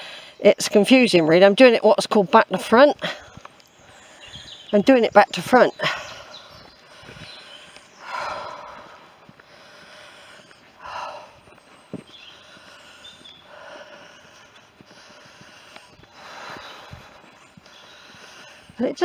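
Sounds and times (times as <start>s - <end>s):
person breathing close to microphone: 3.0s - 4.7s, 5.8s - 18.8s.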